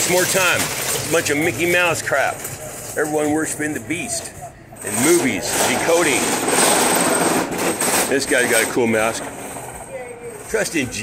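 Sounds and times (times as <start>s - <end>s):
shopping cart wheels rattling: 0.0s - 11.0s.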